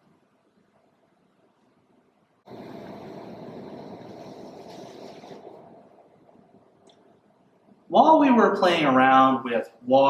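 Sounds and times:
steady rushing noise: 2.5 - 6.9.

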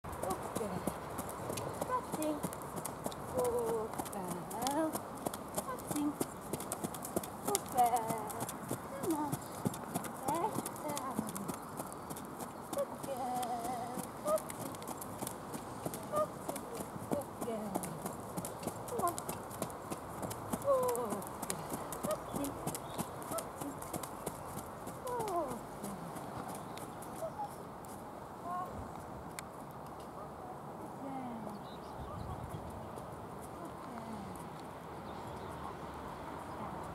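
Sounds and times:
hoofbeats on sand: 0.1 - 27.6.

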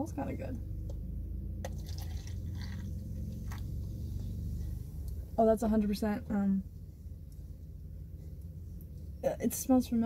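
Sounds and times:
low hum of car cabin: 0.0 - 10.0
soda pouring into plastic cup: 1.7 - 2.8.

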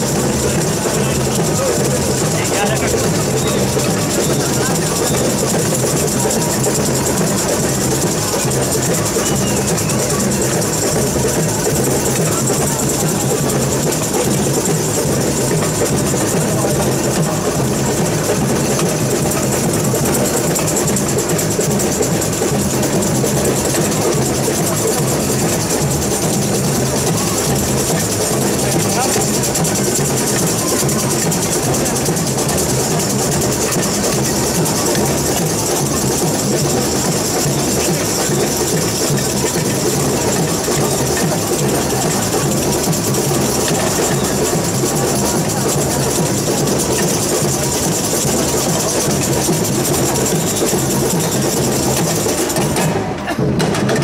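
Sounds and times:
high rattling beat: 0.0 - 54.0
samba percussion band: 0.0 - 54.0.

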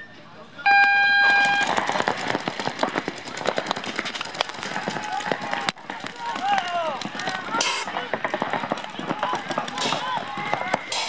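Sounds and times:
voices shouting: 0.0 - 11.0
paintball markers popping: 1.6 - 11.0.

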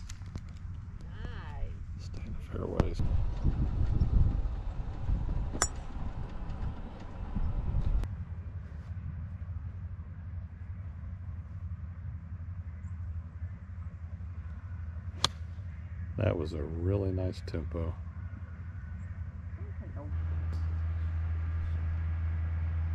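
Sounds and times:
low steady rumble: 0.0 - 22.9
golf club striking ball: 5.6 - 5.9, 15.2 - 15.5.

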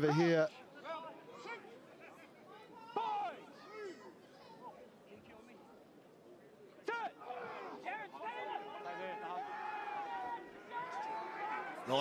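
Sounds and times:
men shouting and calling: 6.9 - 12.0.

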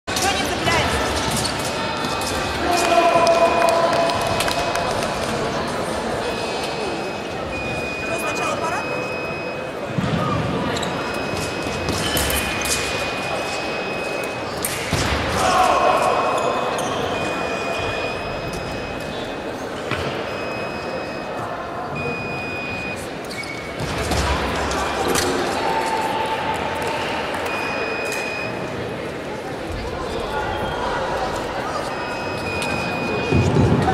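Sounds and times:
chatter of many people: 0.0 - 33.9.

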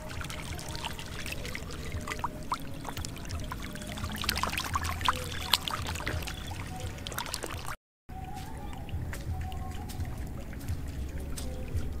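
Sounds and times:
fish thrashing in water: 0.0 - 12.0.

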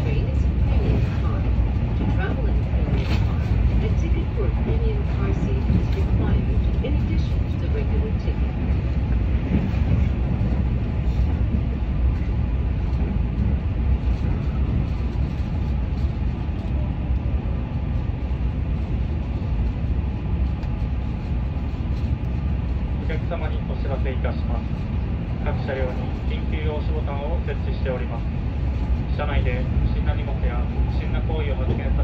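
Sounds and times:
train running at speed: 0.0 - 32.0.

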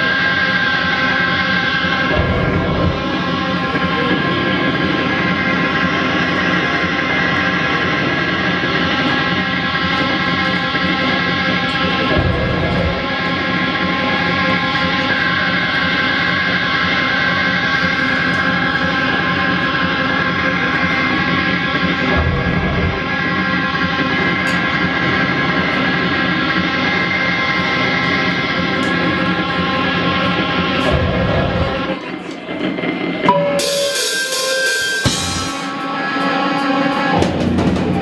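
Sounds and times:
bass guitar: 0.0 - 32.5, 35.0 - 38.0
drums: 0.0 - 38.0
electric guitar: 0.0 - 38.0.

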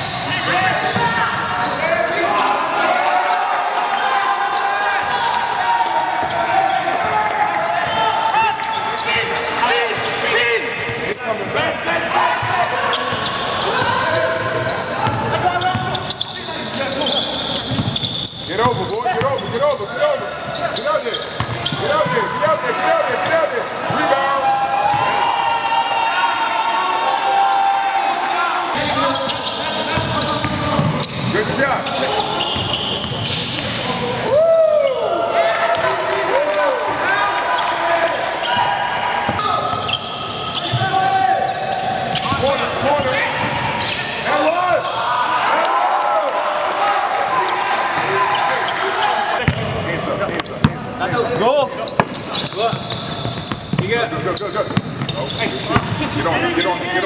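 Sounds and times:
sneakers squeaking: 0.0 - 3.0, 6.2 - 25.2, 28.7 - 34.4, 37.6 - 45.0, 48.0 - 57.0
players shouting: 0.0 - 53.1
basketball bouncing: 21.4 - 21.8, 49.4 - 50.8, 52.0 - 53.9, 55.8 - 56.0.

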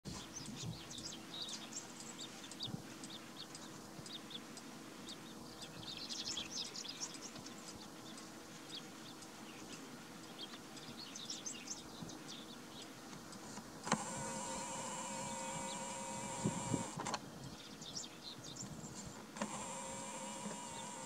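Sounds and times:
faint steady hum: 0.1 - 21.0
small birds chirping: 0.1 - 21.0.

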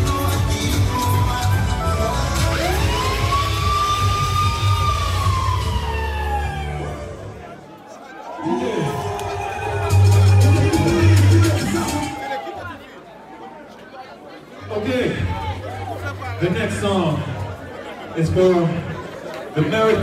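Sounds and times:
dance music with heavy bass beat: 0.0 - 6.9, 9.3 - 12.2
crowd chatter: 0.0 - 20.0
siren-like glide: 2.4 - 7.3.

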